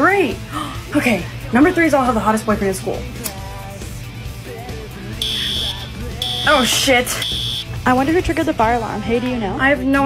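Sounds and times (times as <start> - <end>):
fire alarm beep: 5.2 - 7.7.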